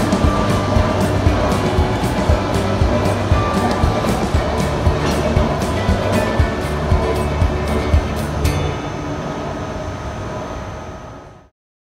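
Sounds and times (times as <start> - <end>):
electric train high whine: 0.0 - 11.5
steady low rumble: 0.0 - 11.5.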